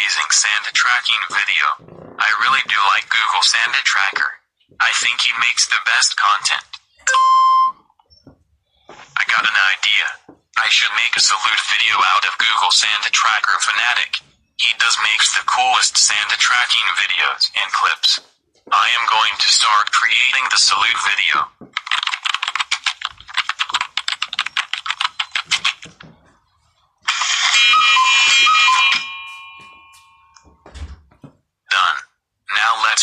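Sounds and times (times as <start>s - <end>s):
rapid typing on keyboard: 21.7s - 26.0s.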